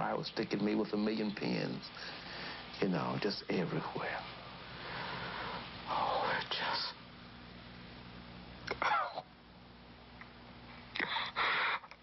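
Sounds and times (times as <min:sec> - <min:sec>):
man whispering strained: 0:05.8 - 0:07.0, 0:08.7 - 0:09.3.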